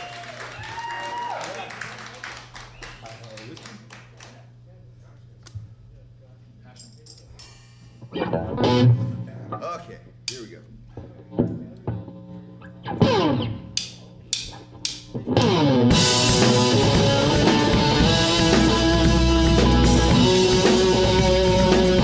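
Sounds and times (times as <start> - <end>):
rock band playing: 8.1 - 9.3, 12.8 - 14.5, 15.1 - 22.0
bass guitar: 8.1 - 9.6, 11.0 - 22.0
electric guitar: 8.1 - 9.6, 11.1 - 13.8, 15.1 - 22.0
drum hits: 15.4 - 22.0.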